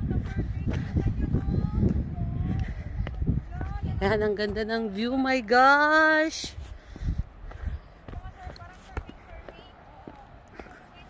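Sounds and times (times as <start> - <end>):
footsteps on dirt trail: 0.0 - 5.2, 6.0 - 11.0
wind rumble on microphone: 0.0 - 5.5, 6.1 - 11.0.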